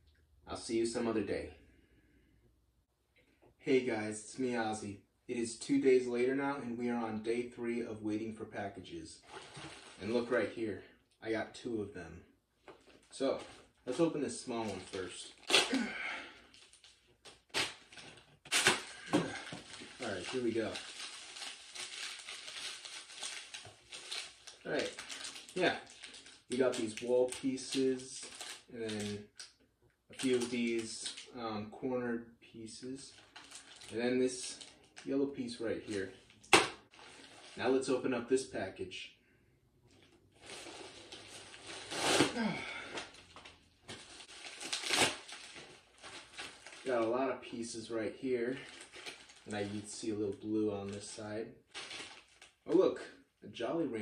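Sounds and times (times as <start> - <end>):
plastic bag ripping and crinkling: 9.2 - 10.3, 12.9 - 29.2, 30.2 - 31.2, 33.1 - 35.1, 40.4 - 47.8, 48.4 - 52.7
plastic package tearing: 12.7 - 29.5, 30.1 - 31.3, 33.2 - 35.1, 40.4 - 47.0, 48.5 - 51.1, 51.7 - 52.7.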